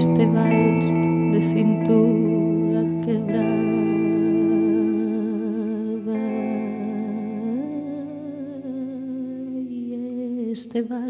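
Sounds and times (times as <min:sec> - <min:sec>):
plucked acoustic guitar: 0:00.0 - 0:08.9
woman singing with vibrato: 0:00.0 - 0:11.0.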